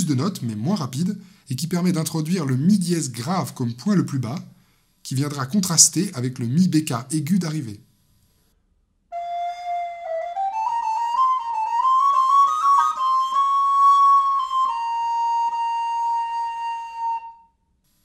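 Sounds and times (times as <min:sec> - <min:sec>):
solo recorder playing: 0:09.1 - 0:17.6.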